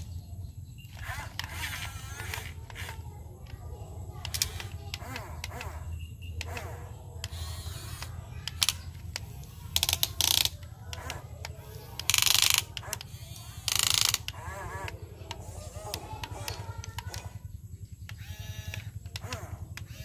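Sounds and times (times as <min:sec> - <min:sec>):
scattered clicks: 0:00.0 - 0:20.0
toy electric gear motors running: 0:00.0 - 0:20.0
loud motor bursts: 0:00.8 - 0:17.4, 0:18.1 - 0:20.0.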